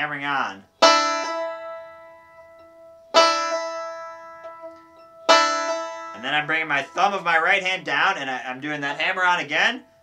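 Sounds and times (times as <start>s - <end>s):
banjo played slowly: 0.0s - 10.0s.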